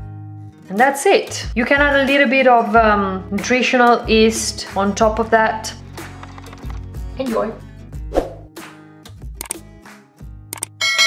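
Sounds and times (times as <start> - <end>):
background music: 0.0 - 11.0
bell ding: 10.8 - 11.0.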